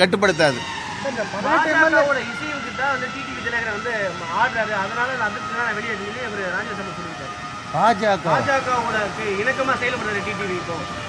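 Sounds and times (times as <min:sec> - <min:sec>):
man speaking: 0:00.0 - 0:10.9.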